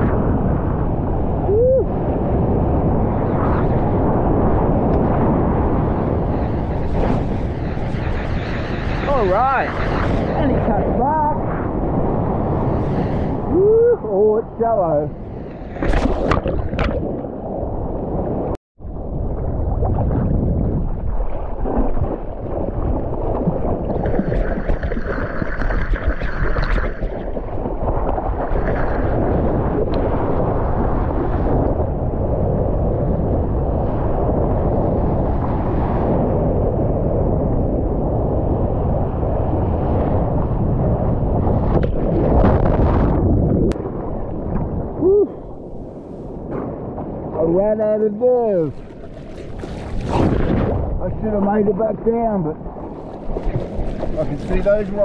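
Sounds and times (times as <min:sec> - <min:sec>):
water rushing and splashing: 0:06.6 - 0:11.4, 0:19.1 - 0:30.3, 0:47.4 - 0:55.0.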